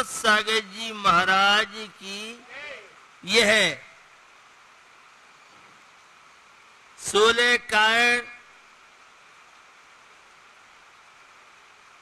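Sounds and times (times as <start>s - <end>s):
man chanting: 0.0s - 3.9s
faint background hiss: 0.0s - 12.0s.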